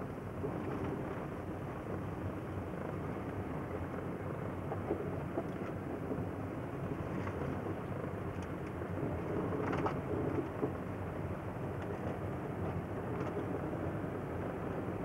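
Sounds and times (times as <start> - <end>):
engine and tyres rumbling: 0.0 - 15.0.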